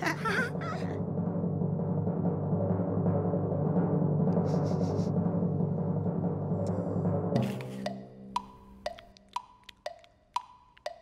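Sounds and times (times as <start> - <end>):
suspense drum roll: 0.0 - 8.3.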